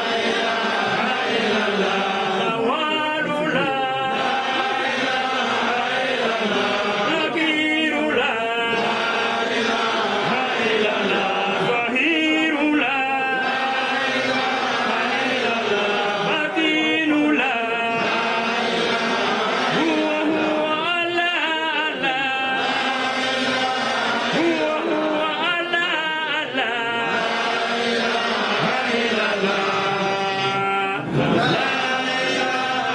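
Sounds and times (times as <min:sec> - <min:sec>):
crowd chanting: 0:00.0 - 0:32.9.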